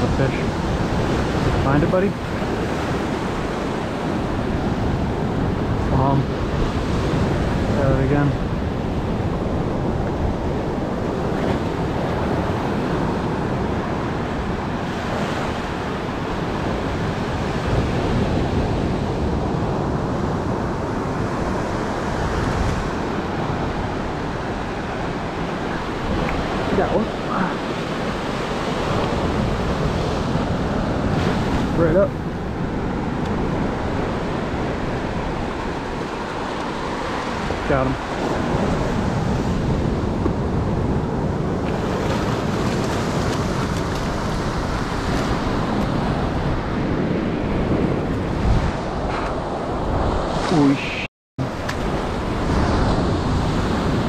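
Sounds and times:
ocean waves breaking: 0.0s - 54.0s.

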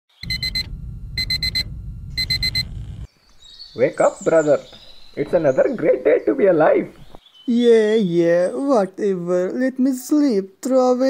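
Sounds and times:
digital alarm clock beeping: 0.2s - 2.8s
steady low rumble: 0.2s - 3.1s.

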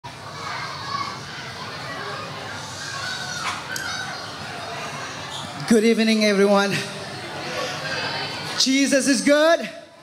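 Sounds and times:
children chattering: 0.1s - 10.0s.

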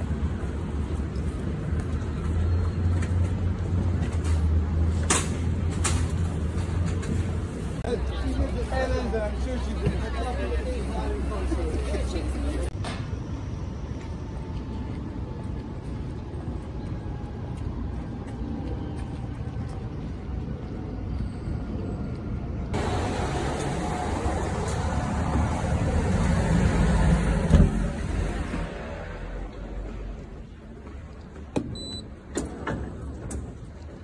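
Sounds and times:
vehicles passing on street: 0.0s - 34.0s.

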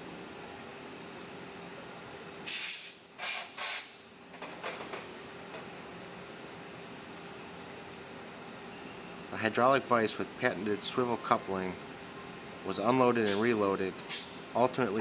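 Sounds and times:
machine-shop hum: 0.0s - 15.0s.

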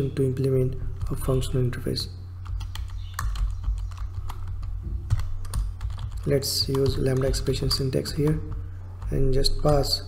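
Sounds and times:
steady low hum: 0.0s - 10.0s
keyboard typing clicks: 2.4s - 9.9s.

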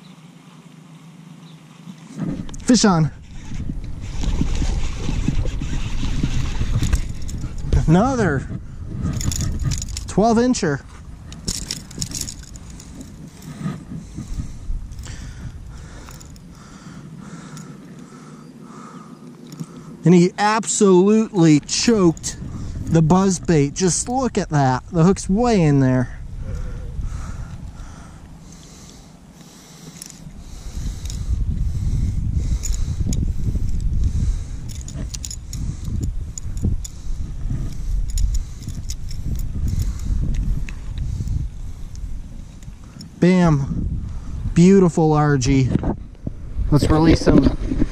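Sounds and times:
rustling and light clicks: 1.8s - 7.9s, 8.5s - 10.2s, 10.8s - 15.2s, 19.2s - 20.1s, 28.5s - 31.4s, 32.5s - 43.2s
metal lure clinking: 9.1s - 10.7s, 11.3s - 13.6s, 15.8s - 16.5s, 29.9s - 31.3s, 32.5s - 33.9s, 34.6s - 37.0s, 37.6s - 40.1s
heavy low microphone rumble: 21.4s - 28.4s, 30.3s - 47.9s.

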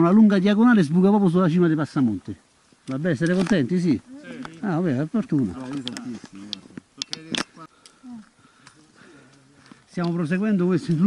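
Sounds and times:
group chatter: 4.0s - 4.6s.

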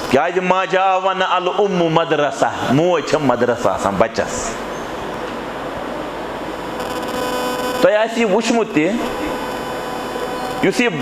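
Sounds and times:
electrical hum with thin tones: 0.0s - 11.0s
man speaking: 7.8s - 9.4s, 10.6s - 11.0s.

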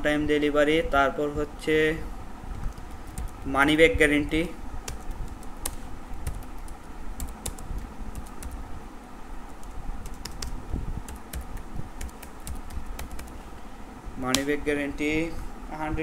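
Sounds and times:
low background hum: 0.0s - 16.0s
keyboard key clicks: 9.6s - 13.3s.

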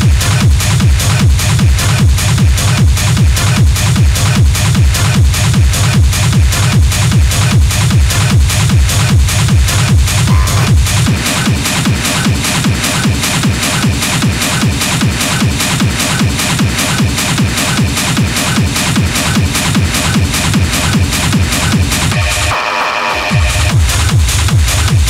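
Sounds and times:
hard techno music: 0.0s - 25.0s.

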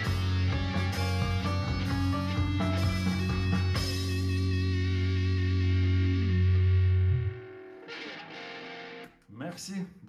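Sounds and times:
distorted electric guitar chord: 0.0s - 9.1s
man speaking: 9.3s - 10.0s.

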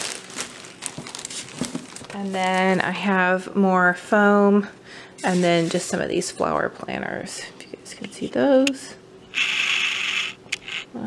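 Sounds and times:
plastic bag crinkling: 0.0s - 2.9s.

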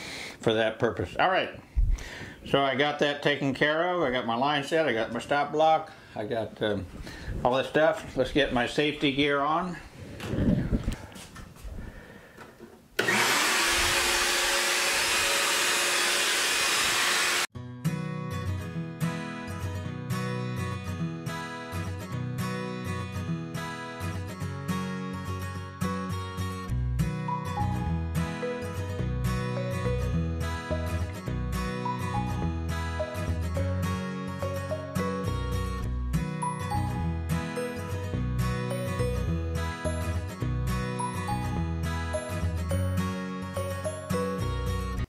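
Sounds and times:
power tool running: 13.0s - 17.5s.

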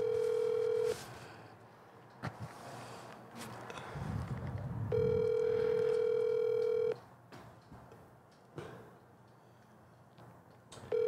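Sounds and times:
phone ringback tone: 0.0s - 1.0s, 4.9s - 7.0s.

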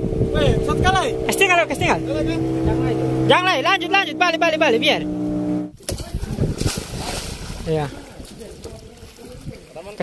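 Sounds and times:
boat motor running: 0.0s - 5.8s
water splashing hard: 5.8s - 10.0s.

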